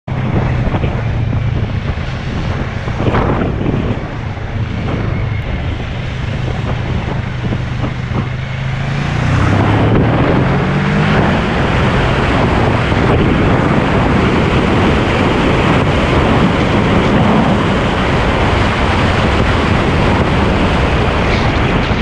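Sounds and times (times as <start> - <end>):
motorcycle engine accelerating: 0.1 - 22.0
wind noise on microphone: 0.1 - 22.0.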